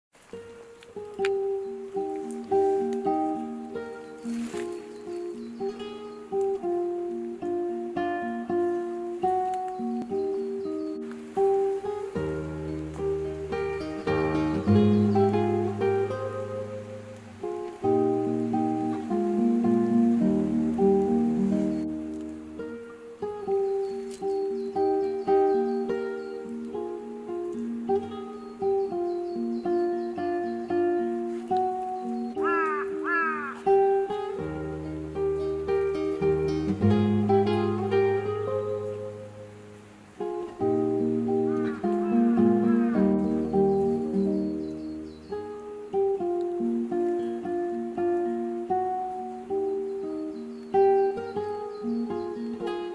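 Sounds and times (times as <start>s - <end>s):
plucked string melody: 0.2s - 52.9s.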